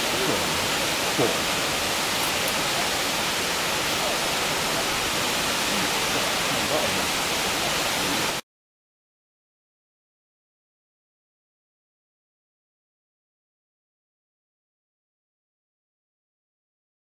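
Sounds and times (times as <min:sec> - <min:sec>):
waterfall rushing: 0:00.0 - 0:08.4.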